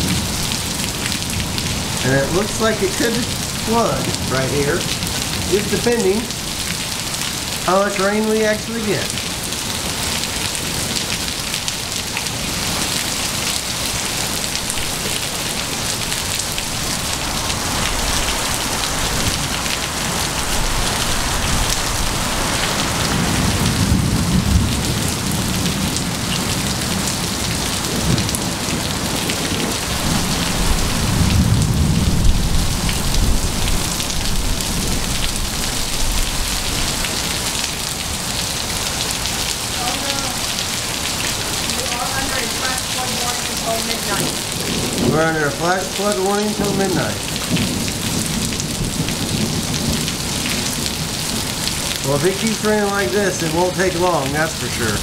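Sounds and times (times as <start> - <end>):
heavy rain on gravel and pavement: 0.0 - 55.0
low rolls of thunder: 16.2 - 37.0, 43.9 - 45.6, 47.1 - 51.5.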